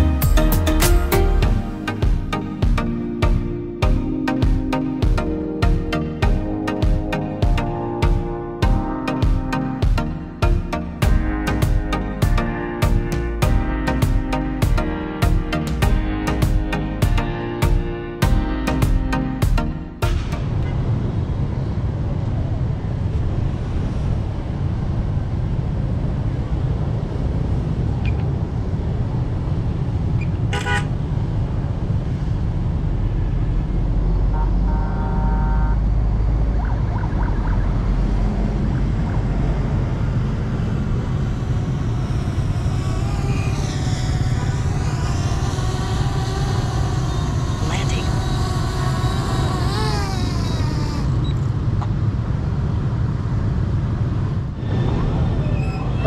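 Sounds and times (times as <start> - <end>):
road traffic: 0.0 - 56.0
car horn toots: 30.5 - 30.9, 34.3 - 35.9
voices passing by: 36.1 - 51.8.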